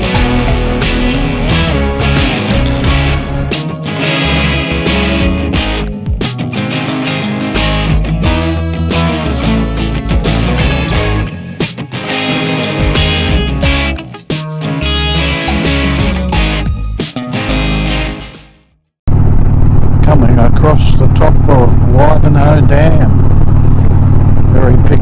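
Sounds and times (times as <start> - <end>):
rock music with electric guitar: 0.0 - 18.7
motorcycle engine drone: 7.7 - 11.6, 19.1 - 25.0
man talking: 20.0 - 23.1, 24.5 - 25.0.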